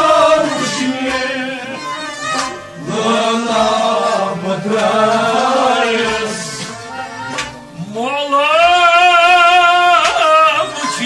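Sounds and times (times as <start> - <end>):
man singing: 0.0 - 2.2, 2.8 - 6.9, 7.8 - 11.0
instrumental accompaniment: 0.0 - 11.0.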